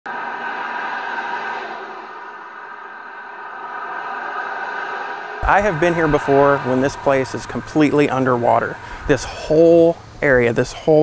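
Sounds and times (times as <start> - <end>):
road traffic noise: 5.4 - 10.6.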